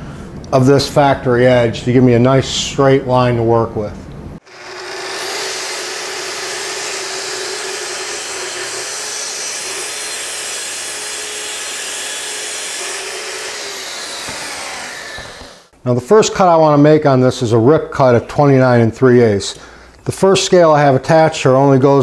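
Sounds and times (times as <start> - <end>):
track saw cutting plywood: 4.4 - 15.7.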